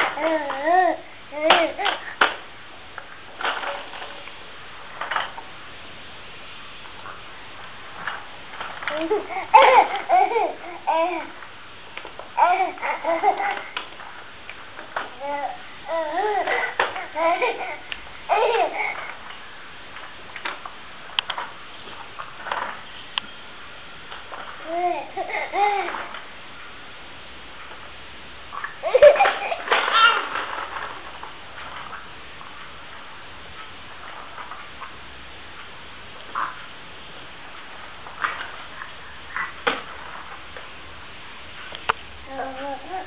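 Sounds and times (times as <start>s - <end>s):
steady quiet hiss: 0.0s - 43.0s.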